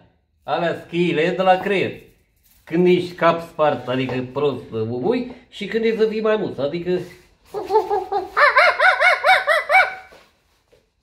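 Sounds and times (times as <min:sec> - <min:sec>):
chicken-like clucking squawks: 0:07.5 - 0:10.2.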